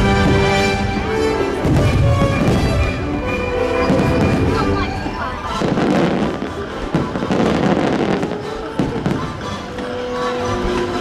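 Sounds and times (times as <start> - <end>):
fireworks bursting: 0.0 - 10.9
music soundtrack: 0.0 - 11.0.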